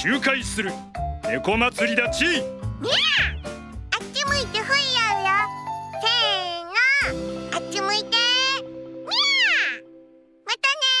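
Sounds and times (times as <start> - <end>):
cartoon kitten meowing: 2.8 - 3.4, 9.1 - 9.8.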